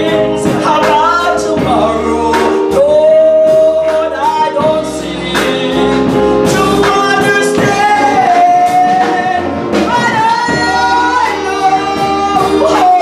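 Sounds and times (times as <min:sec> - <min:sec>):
instrumental accompaniment with bass: 0:00.0 - 0:13.0
person singing: 0:00.0 - 0:13.0.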